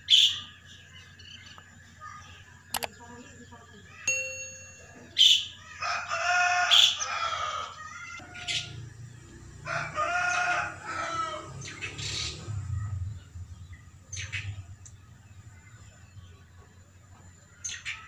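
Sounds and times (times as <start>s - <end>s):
rooster crowing: 5.6s - 8.9s, 9.6s - 11.8s.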